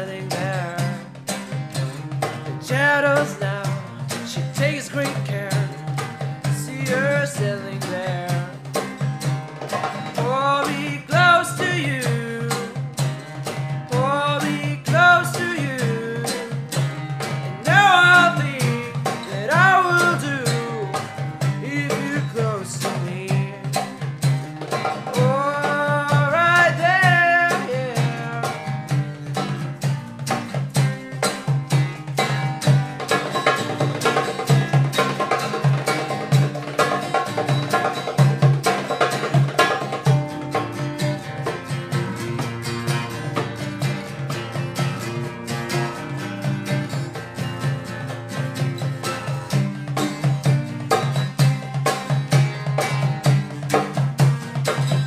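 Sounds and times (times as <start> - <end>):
acoustic guitar strumming: 0.0 - 55.0
goblet drum beating: 0.0 - 55.0
person singing long notes: 17.6 - 23.8, 25.2 - 28.6.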